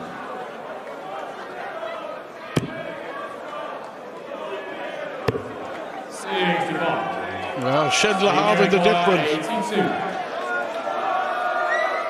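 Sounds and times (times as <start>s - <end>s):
murmur of arena crowd: 0.0s - 12.0s.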